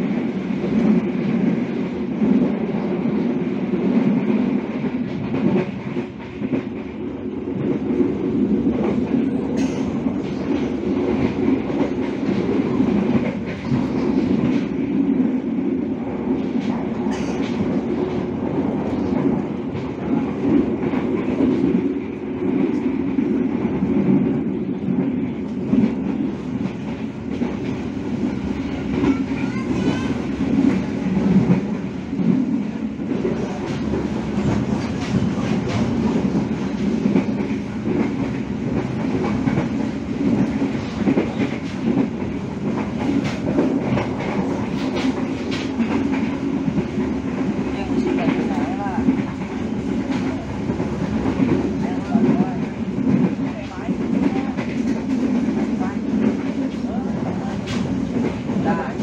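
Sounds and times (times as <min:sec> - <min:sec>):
clickety-clack of rail joints: 0:00.0 - 0:59.0
train wheels rumbling on rails: 0:00.0 - 0:59.0.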